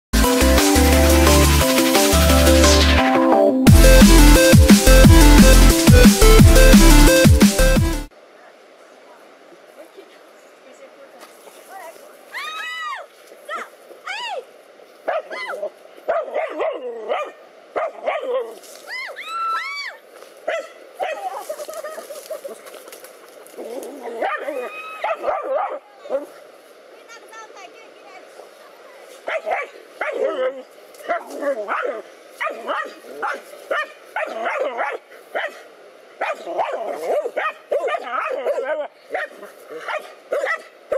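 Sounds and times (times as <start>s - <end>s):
dogs barking and yelping: 15.1s - 18.6s, 20.5s - 22.6s, 23.6s - 26.4s, 29.3s - 35.6s, 36.2s - 40.7s.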